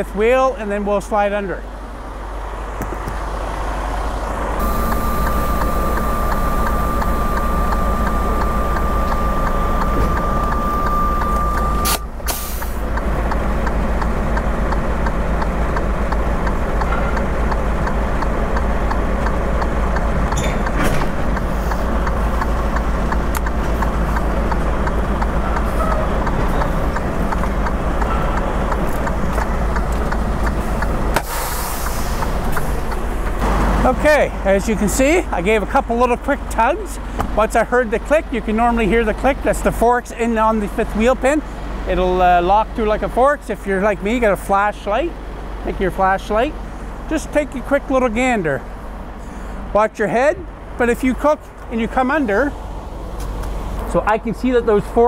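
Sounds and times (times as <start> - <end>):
diesel truck engine running: 0.0 - 55.0.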